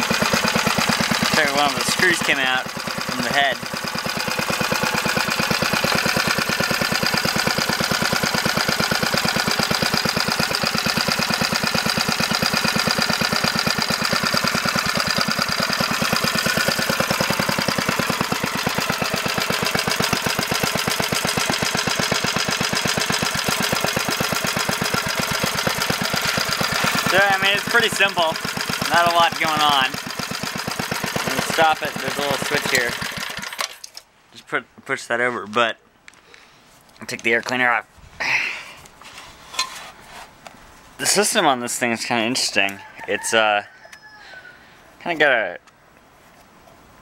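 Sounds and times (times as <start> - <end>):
small engine idling: 0.0 - 34.0.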